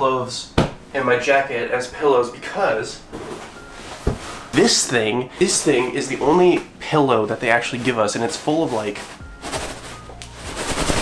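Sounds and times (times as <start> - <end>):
grain pillow rustling and rattling: 3.2 - 11.0.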